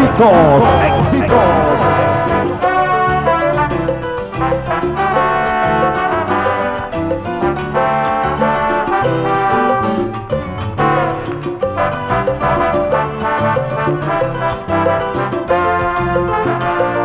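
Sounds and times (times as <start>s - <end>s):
brass section: 0.0s - 17.0s
salsa band music: 0.0s - 17.0s.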